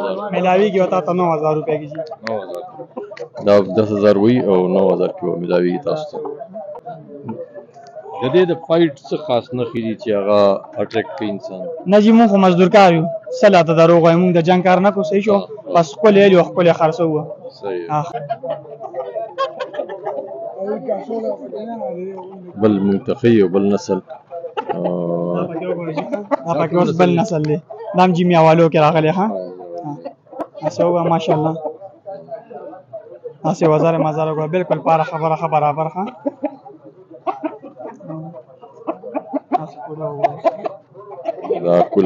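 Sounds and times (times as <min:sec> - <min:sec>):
chickens clucking: 0:00.0 - 0:42.0
men's voices: 0:00.0 - 0:42.0.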